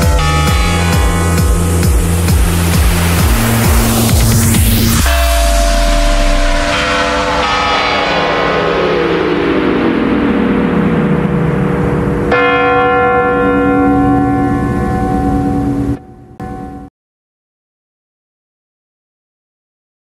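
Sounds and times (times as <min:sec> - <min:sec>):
bell-like chime: 0:00.0 - 0:11.0, 0:12.3 - 0:16.9
bells ringing: 0:00.0 - 0:16.9.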